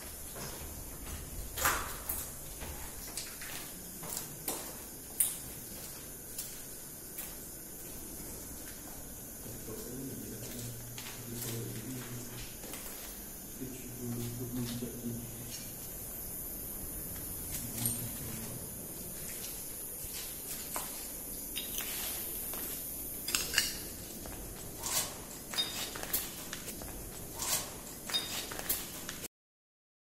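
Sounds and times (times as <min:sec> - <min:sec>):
footsteps on concrete: 0:00.0 - 0:13.3, 0:17.0 - 0:23.0, 0:24.0 - 0:29.2.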